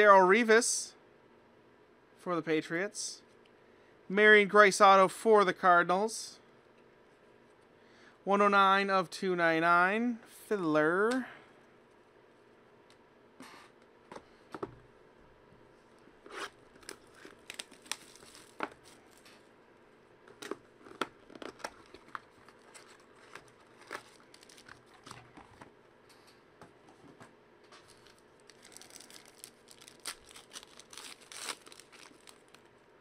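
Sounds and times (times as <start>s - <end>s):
handling trading cards: 16.3s - 19.4s, 20.3s - 26.3s, 27.7s - 32.7s
foil wrapper crinkling: 16.7s - 19.4s, 20.3s - 25.2s, 27.8s - 32.7s.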